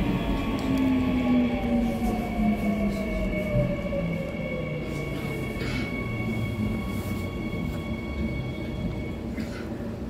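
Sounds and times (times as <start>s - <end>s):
low rail rumble: 0.0s - 10.0s.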